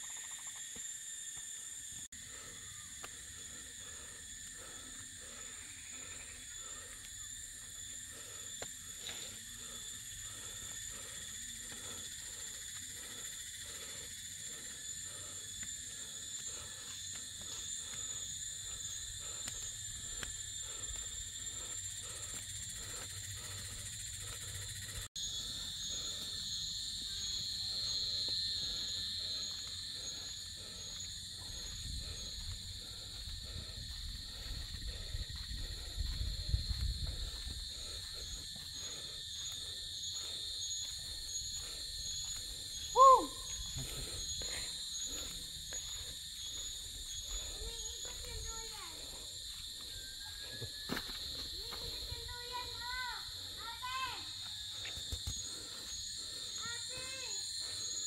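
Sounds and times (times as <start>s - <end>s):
insects chorus: 0.0s - 58.0s.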